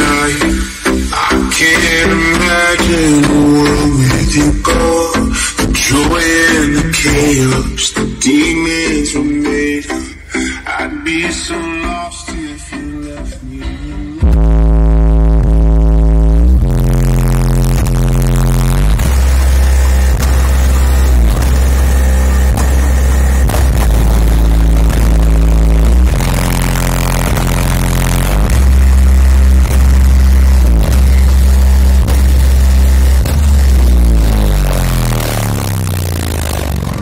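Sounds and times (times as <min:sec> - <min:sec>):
loud bass-heavy music from car: 0:00.0 - 0:37.0.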